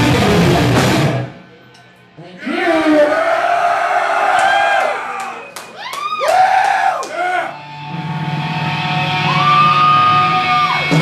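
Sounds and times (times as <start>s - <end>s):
crowd yelling and whooping: 2.7s - 7.7s, 9.1s - 11.0s.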